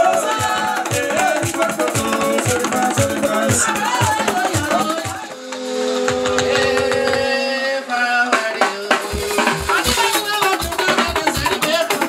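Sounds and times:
bass drum beat: 0.0 - 5.3, 9.0 - 12.0
light percussion: 0.0 - 7.5, 8.4 - 12.0
live band music: 0.0 - 12.0.

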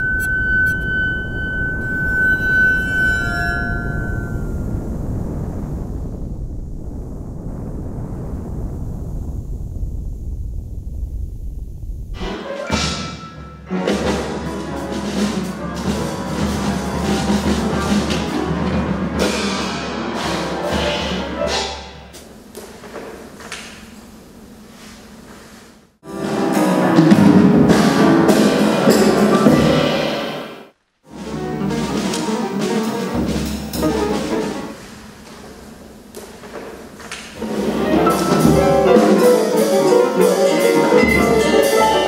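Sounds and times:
drum kit playing: 12.2 - 22.2, 26.0 - 34.9, 37.4 - 42.0
upright piano: 33.8 - 34.8, 37.4 - 42.0.

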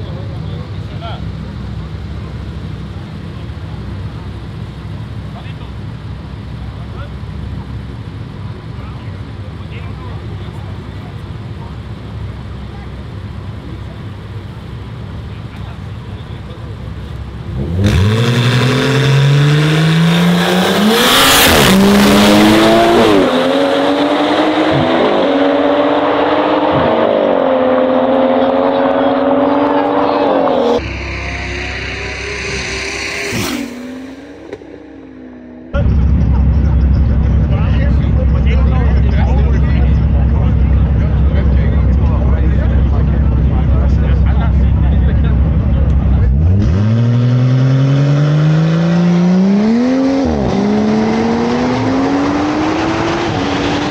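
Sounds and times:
car engines at full throttle: 0.0 - 53.9
background rumble: 30.8 - 46.3.

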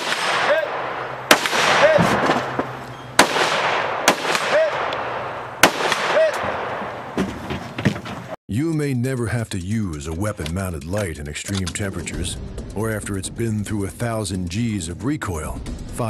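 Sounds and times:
rifle shots echoing: 0.0 - 7.2.

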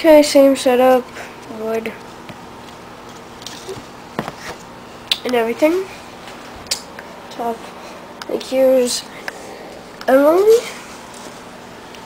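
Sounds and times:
hand tapping and rustling wood: 1.4 - 4.7.

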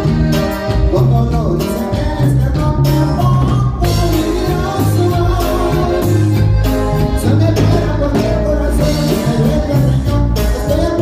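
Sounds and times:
live band playing cumbia: 0.0 - 11.0
person singing: 0.0 - 11.0
steady bass beat: 0.0 - 11.0.

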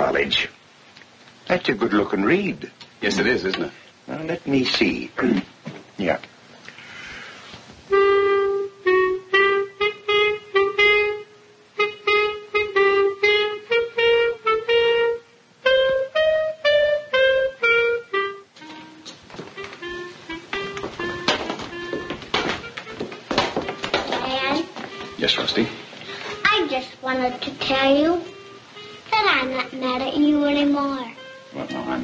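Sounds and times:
clarinet melody: 7.8 - 32.0
soft low music: 7.8 - 32.0
scattered knocks: 20.6 - 24.4.

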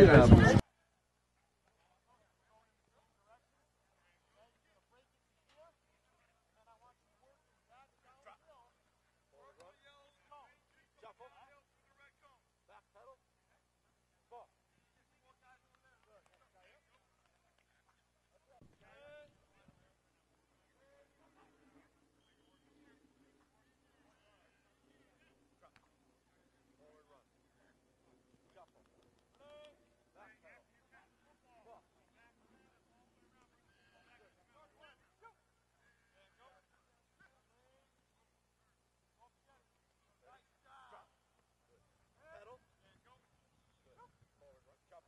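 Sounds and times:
distant voices talking and calling: 13.3 - 45.0.

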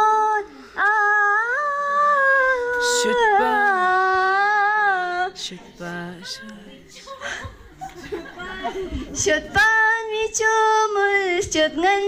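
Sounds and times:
woman singing into a microphone: 0.0 - 7.6, 8.4 - 12.0.

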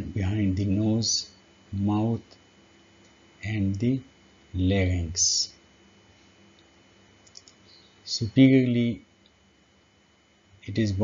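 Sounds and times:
steady low hum: 0.0 - 11.0
faint clicks: 6.5 - 7.8.

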